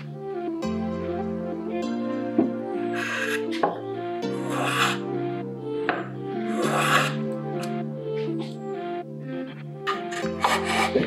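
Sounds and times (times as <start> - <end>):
background music: 0.0 - 11.0
hand plane scraping wood: 9.9 - 11.0.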